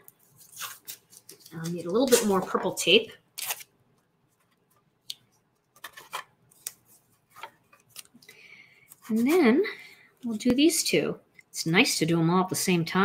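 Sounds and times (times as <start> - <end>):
masking tape clicks and crinkles: 3.4 - 8.3.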